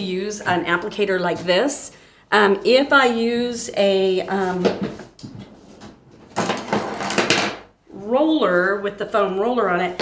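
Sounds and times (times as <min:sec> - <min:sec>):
rustling knocking clatter of objects: 0:04.7 - 0:07.7.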